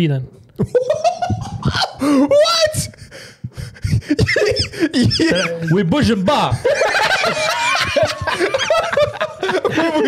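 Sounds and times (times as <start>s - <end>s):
men laughing: 0.6s - 2.6s, 3.6s - 10.0s.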